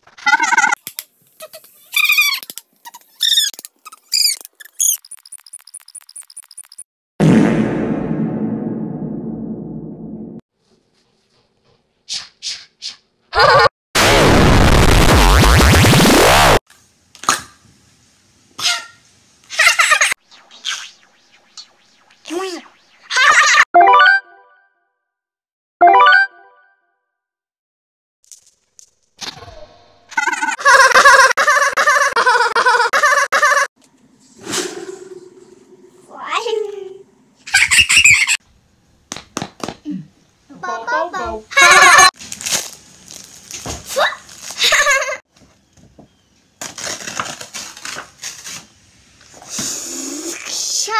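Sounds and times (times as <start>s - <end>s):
warbling bird-like squawks: 20.2s - 23.6s
high electronic blips: 20.2s - 24.2s.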